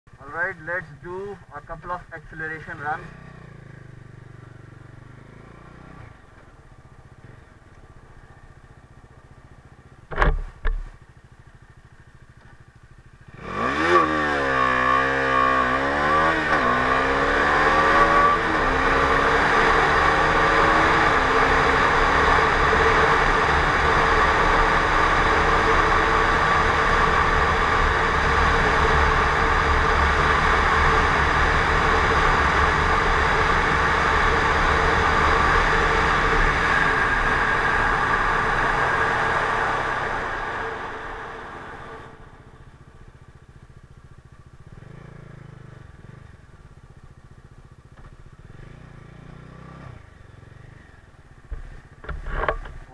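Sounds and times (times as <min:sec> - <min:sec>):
motorcycle engine accelerating: 0:00.1 - 0:52.9.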